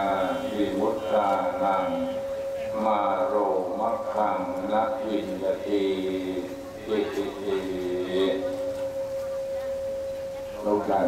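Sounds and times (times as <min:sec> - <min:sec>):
microphone feedback ringing tone: 0:00.0 - 0:05.4, 0:06.0 - 0:11.0
person speaking: 0:00.0 - 0:09.6.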